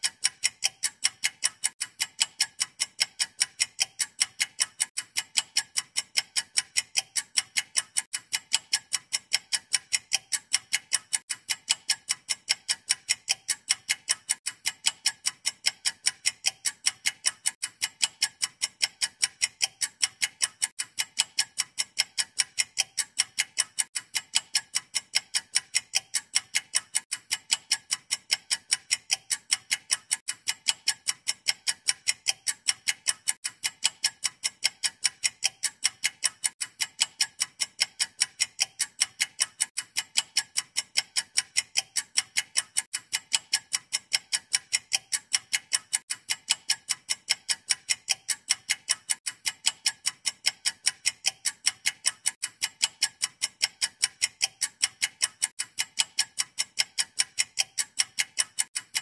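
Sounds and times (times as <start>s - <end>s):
clock ticking fast: 0.0s - 59.0s.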